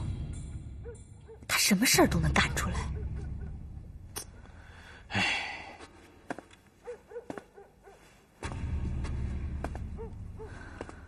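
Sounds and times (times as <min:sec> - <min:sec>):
person sighing: 0:04.6 - 0:05.8.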